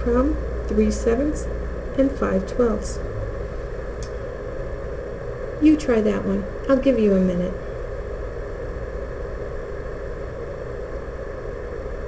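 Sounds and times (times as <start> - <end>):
low background hum and rumble: 0.0 - 12.0.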